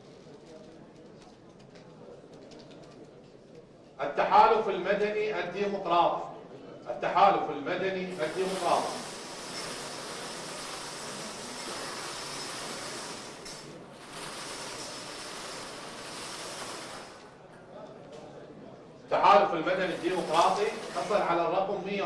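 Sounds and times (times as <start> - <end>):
balls rattling in lottery drum: 8.1 - 17.3, 19.7 - 21.4.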